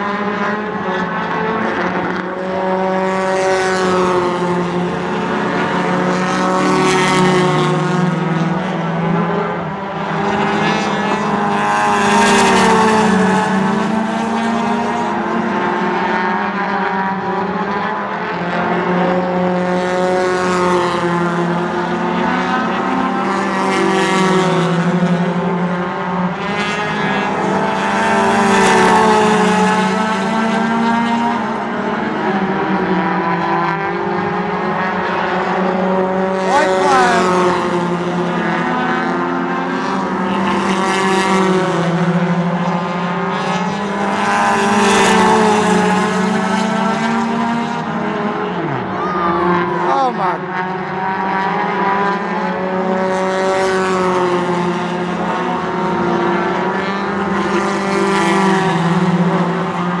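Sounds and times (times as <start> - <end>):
race car engines passing: 0.1 - 60.0.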